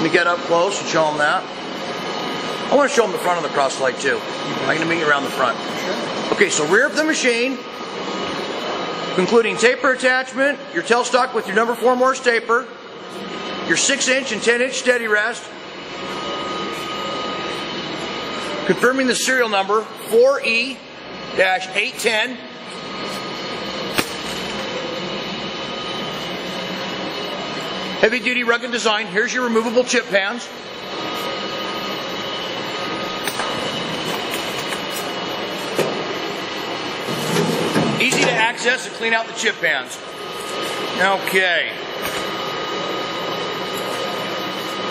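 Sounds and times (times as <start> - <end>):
machinery hiss with high whine: 0.0 - 10.2, 13.0 - 44.9.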